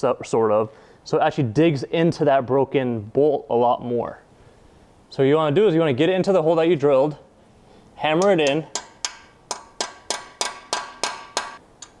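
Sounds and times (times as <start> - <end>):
hammer striking metal: 8.1 - 12.0.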